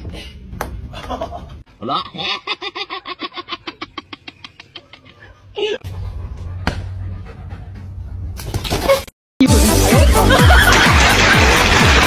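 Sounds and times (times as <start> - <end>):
dog panting: 6.5 - 8.4.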